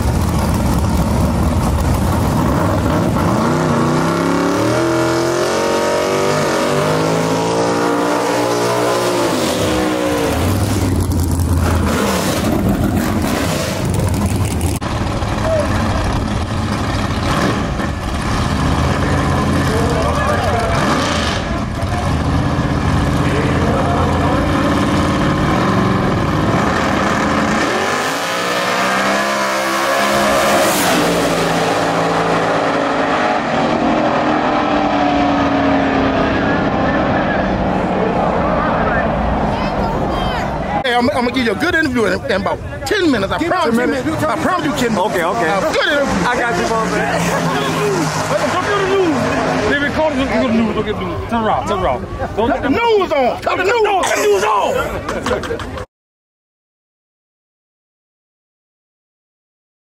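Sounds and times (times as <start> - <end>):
race cars accelerating away: 0.0 - 52.6
race car engines revving: 0.0 - 55.9
crowd voices: 8.4 - 25.0, 35.0 - 55.9.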